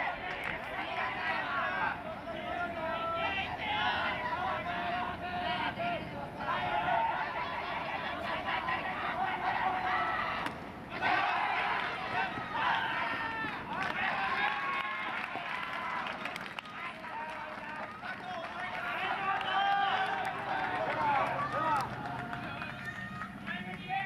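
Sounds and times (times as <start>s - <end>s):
players shouting: 0.0s - 24.0s.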